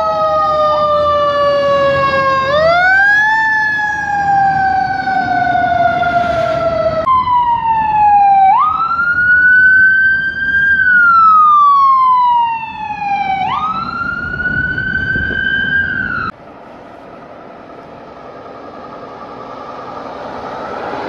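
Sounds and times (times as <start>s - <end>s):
ambulance siren: 0.0s - 16.4s, 17.2s - 21.0s
fire engine siren: 0.0s - 21.0s.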